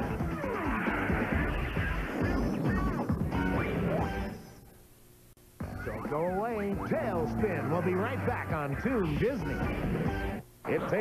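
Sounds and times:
music: 0.0 - 4.7, 5.6 - 11.0.

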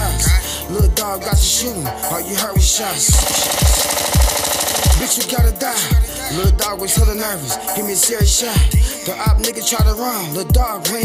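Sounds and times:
hip-hop beat with deep bass: 0.0 - 11.0
automatic gunfire: 3.1 - 5.2.

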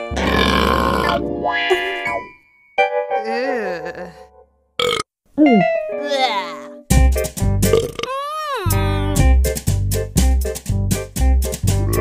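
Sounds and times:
cartoon burps: 4.8 - 5.7, 7.7 - 8.2
light music: 5.4 - 7.8.

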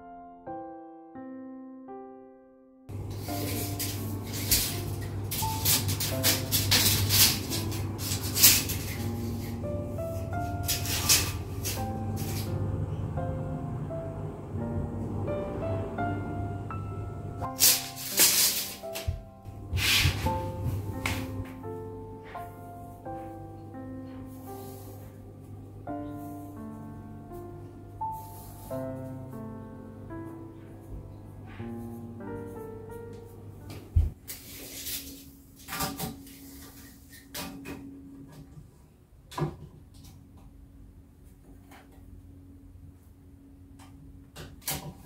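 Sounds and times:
soft piano music: 0.0 - 45.0
timber scraping: 3.1 - 9.6
tape measure zipping: 17.6 - 19.1.

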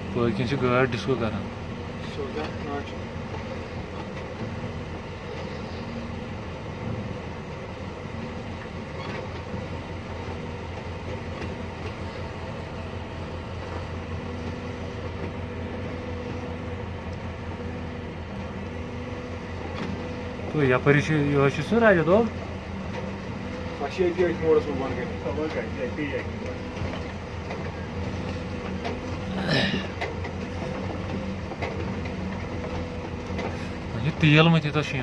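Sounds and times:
tyre and road rumble: 0.0 - 35.0
vehicle engine hum: 0.0 - 35.0.

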